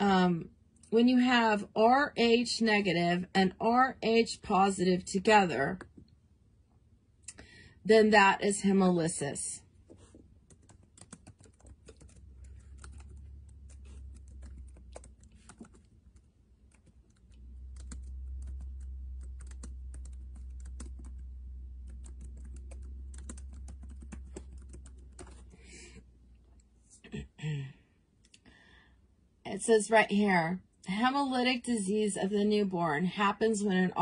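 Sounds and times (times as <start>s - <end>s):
low steady hum: 0.0s - 34.0s
laptop keyboard typing: 9.9s - 25.6s.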